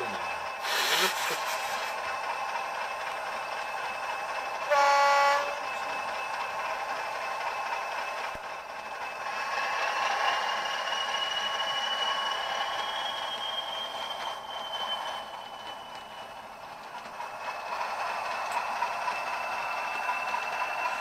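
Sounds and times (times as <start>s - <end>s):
model diesel engine through small speaker: 0.0s - 21.0s
rising high whistle: 10.8s - 16.2s.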